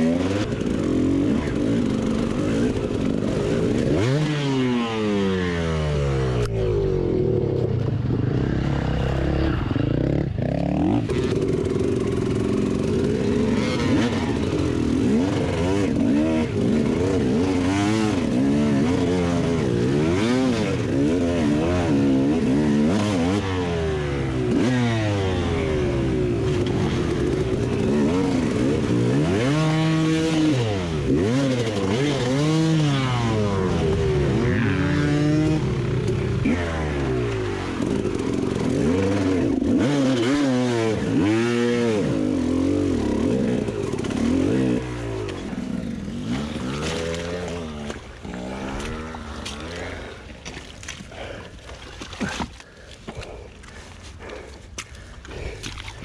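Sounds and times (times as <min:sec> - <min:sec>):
motorcycle engine revving: 0:00.0 - 0:50.4.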